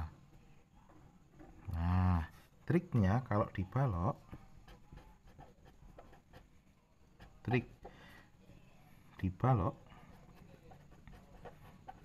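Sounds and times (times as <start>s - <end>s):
marker scratching on paper: 4.1s - 7.9s, 9.8s - 12.0s.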